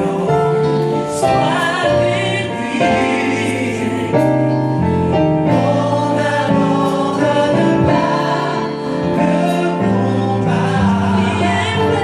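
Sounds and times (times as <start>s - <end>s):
gospel choir singing in harmony: 0.0s - 12.0s.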